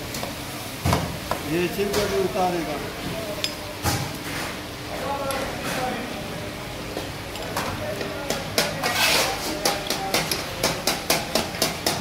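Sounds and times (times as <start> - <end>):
food frying in hot oil: 0.0 - 4.8.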